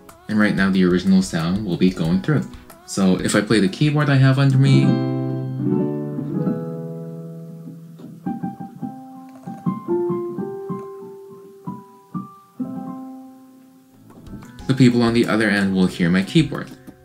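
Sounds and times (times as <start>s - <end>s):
electric keyboard playing: 0.0s - 17.0s.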